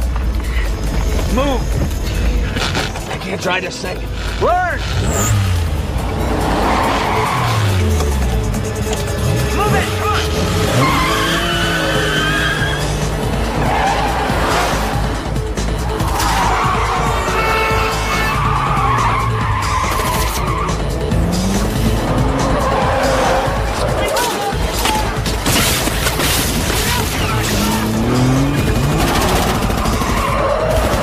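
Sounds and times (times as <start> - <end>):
car engines revving: 0.0 - 31.0
soundtrack music: 0.0 - 31.0
tyres squealing: 1.2 - 8.2, 9.3 - 31.0.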